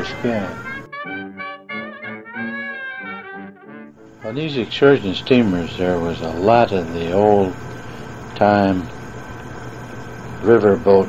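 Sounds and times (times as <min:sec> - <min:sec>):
jazz trumpet playing: 0:00.0 - 0:04.4.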